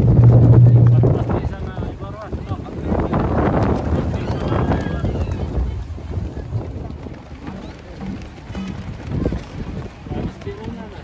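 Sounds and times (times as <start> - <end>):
crowd chatter: 0.0 - 11.0
wind buffeting microphone: 0.0 - 11.0.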